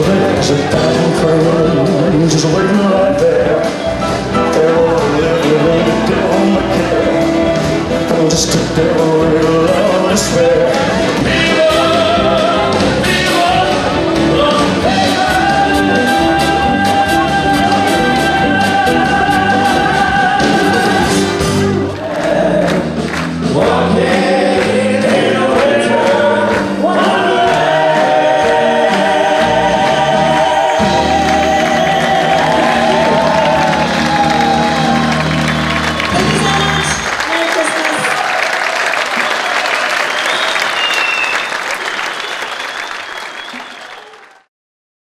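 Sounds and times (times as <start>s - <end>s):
live band with drums and keyboard: 0.0s - 44.2s
audience applauding: 4.1s - 44.5s
group singing: 4.6s - 35.3s.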